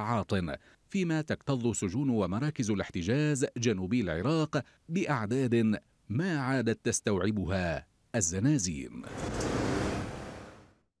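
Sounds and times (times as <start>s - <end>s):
street traffic noise: 9.1s - 10.8s.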